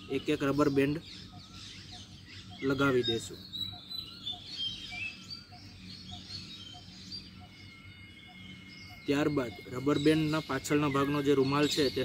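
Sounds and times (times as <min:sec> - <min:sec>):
faint birdsong chirps and whistles: 0:00.0 - 0:12.0
outdoor background noise: 0:00.0 - 0:12.0
soft low repeating bird note: 0:00.0 - 0:12.0.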